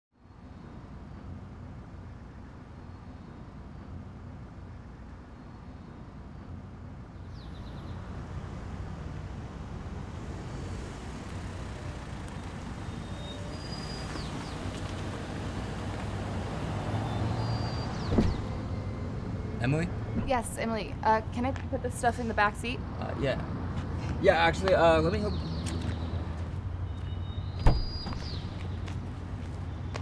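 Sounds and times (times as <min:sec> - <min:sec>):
car engine and tyre rumble: 0:00.2 - 0:30.0.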